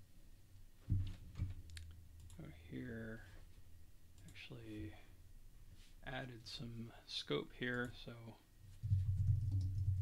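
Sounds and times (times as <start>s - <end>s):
typing on computer keyboard: 8.8s - 10.0s.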